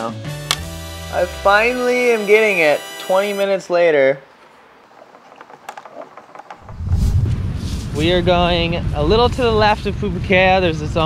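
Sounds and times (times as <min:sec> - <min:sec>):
wind buffeting microphone: 0:06.5 - 0:11.0.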